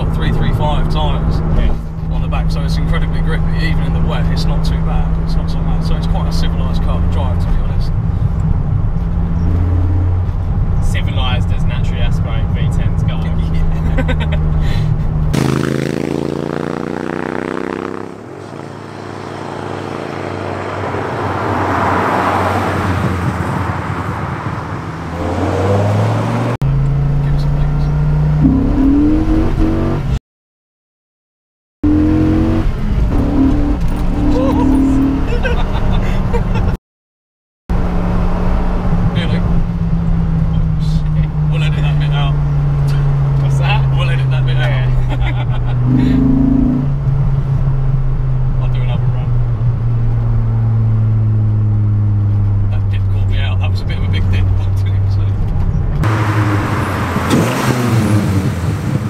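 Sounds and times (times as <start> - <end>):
car engine revving: 0.0 - 30.2, 31.8 - 36.6, 37.7 - 59.0
vehicle passing by: 15.4 - 26.6, 45.2 - 47.1
car engine droning in cabin: 31.8 - 36.7, 37.7 - 59.0.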